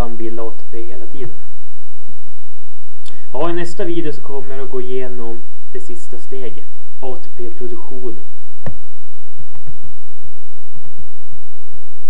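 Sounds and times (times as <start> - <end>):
electrical hum: 0.0 - 12.0
soft low thumps: 0.0 - 12.0.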